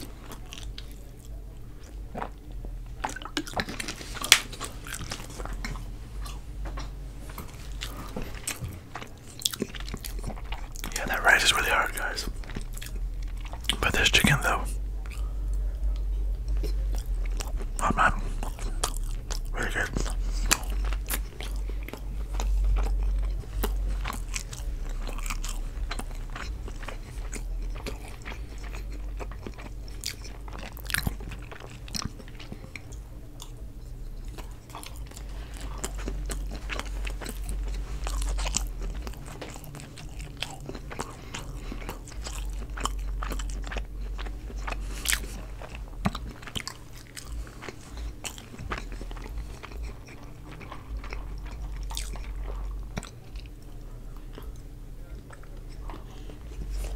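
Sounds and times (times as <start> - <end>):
wet chewing mouth clicks: 0.0 - 54.6
steady low hum: 0.0 - 56.9.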